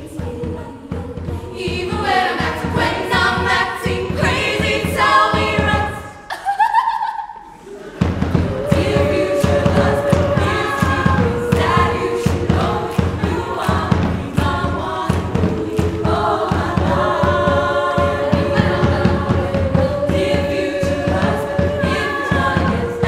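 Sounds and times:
women singing in harmony: 0.0s - 6.4s, 7.8s - 23.0s.

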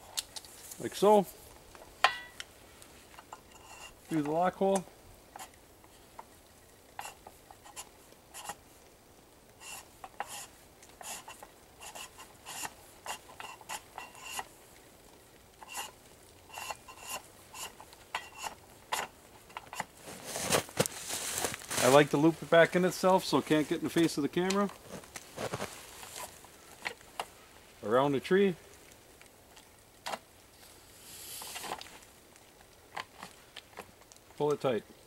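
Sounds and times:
steel cable scraping against metal box: 3.0s - 4.8s, 6.9s - 8.6s, 9.6s - 14.6s, 15.6s - 22.0s, 31.0s - 32.0s.

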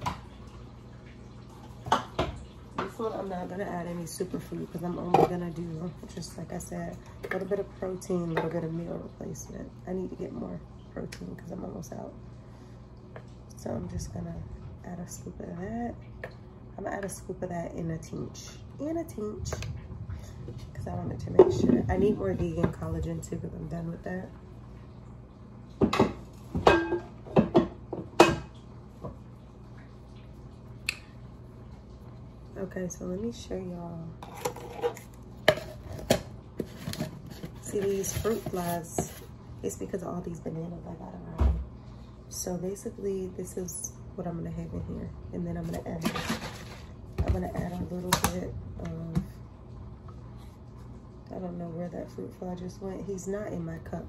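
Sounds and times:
dishes knocking and clinking: 25.8s - 28.5s.

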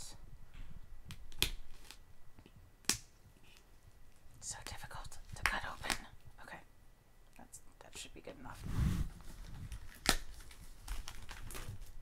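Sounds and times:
plastic film crinkling: 9.2s - 12.0s
knife cutting plastic wrap: 9.7s - 12.0s.

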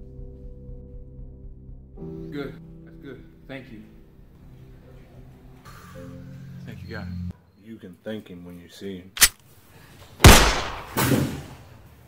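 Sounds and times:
pistol shot with echo: 10.2s - 11.5s.

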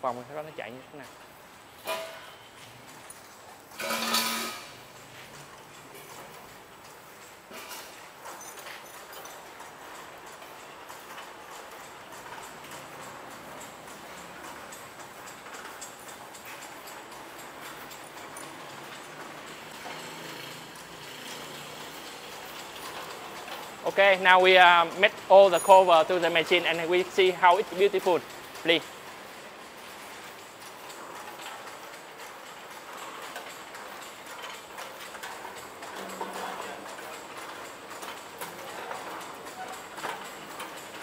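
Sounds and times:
machine rhythmic clatter: 0.0s - 41.0s.

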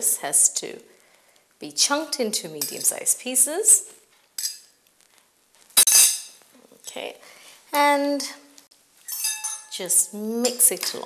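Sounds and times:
metal clinking on glass bowl: 9.1s - 9.8s.

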